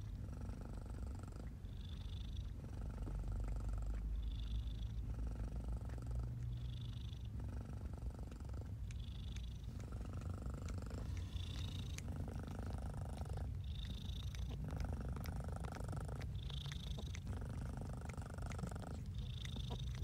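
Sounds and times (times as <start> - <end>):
cat purring: 0.0 - 20.0.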